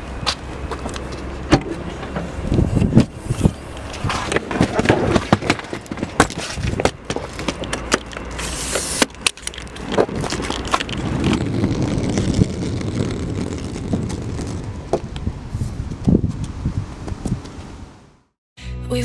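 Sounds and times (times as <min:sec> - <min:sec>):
suitcase wheels rumbling on pavement: 0:00.0 - 0:17.8.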